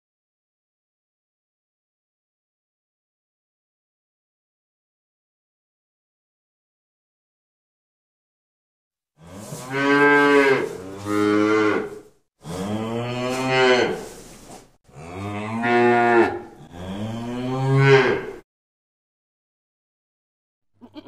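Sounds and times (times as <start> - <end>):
cow mooing: 9.2 - 14.1, 14.9 - 18.4.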